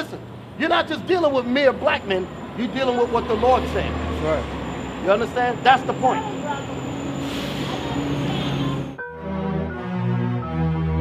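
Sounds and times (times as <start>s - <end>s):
large vehicle engine running: 0.2s - 9.0s.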